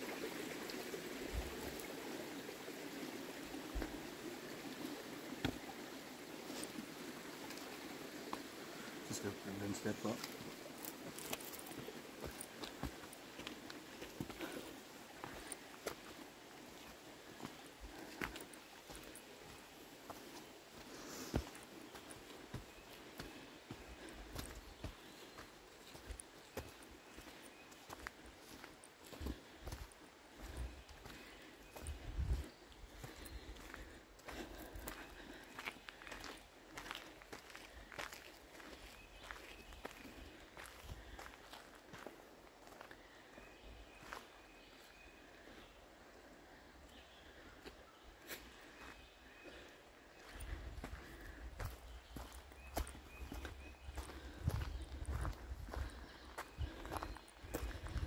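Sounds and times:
footsteps on dirt trail: 4.8 - 45.7, 46.9 - 58.0.

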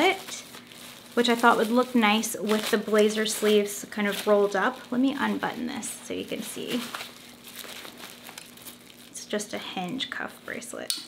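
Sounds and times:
plastic wrapping crinkling: 0.0 - 10.8.

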